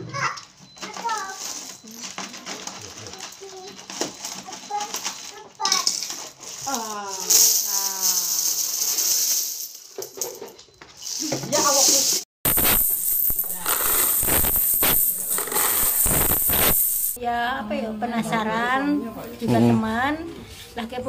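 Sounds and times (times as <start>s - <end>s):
coins rattling and pouring: 1.2s - 17.2s
broom sweeping tiled floor: 10.9s - 17.2s.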